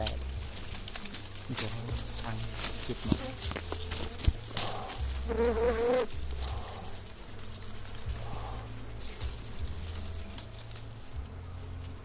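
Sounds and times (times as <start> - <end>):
leaves and twigs rustling: 0.0 - 12.0.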